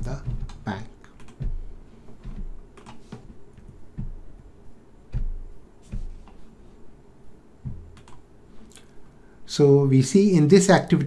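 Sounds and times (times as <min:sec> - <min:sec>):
keyboard and mouse clicks: 0:00.0 - 0:01.6, 0:02.2 - 0:04.2, 0:07.6 - 0:08.9.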